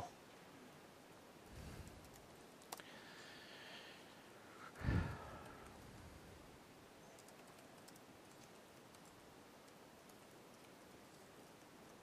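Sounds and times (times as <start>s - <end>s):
room hiss: 0.0s - 7.1s
keyboard typing clicks: 7.2s - 9.2s.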